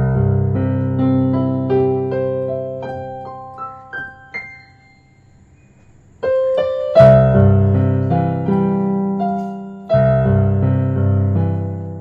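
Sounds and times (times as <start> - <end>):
keyboard piano notes and chords: 0.0 - 12.0.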